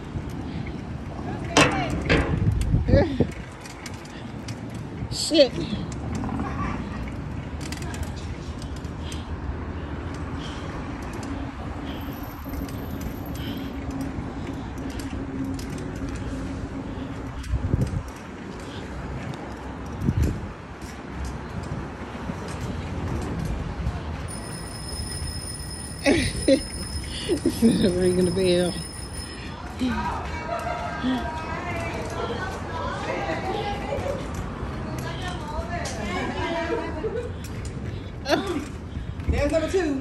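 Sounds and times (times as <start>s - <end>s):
wind and road noise: 0.0s - 40.0s
high ringing tone: 24.3s - 29.6s.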